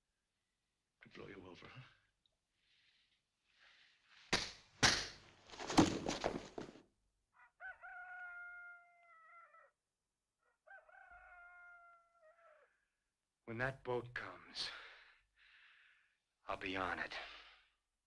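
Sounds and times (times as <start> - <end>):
rooster crowing: 7.4 - 9.8, 10.4 - 12.8.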